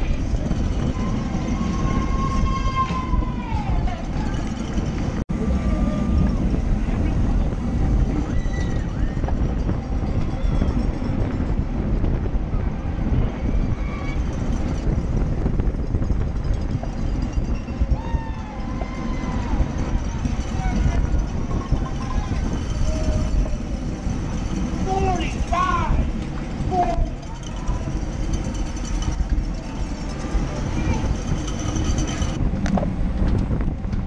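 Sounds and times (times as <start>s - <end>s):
wind buffeting microphone: 0.0s - 34.0s
people shouting: 1.0s - 4.3s, 18.0s - 21.1s, 22.2s - 28.0s.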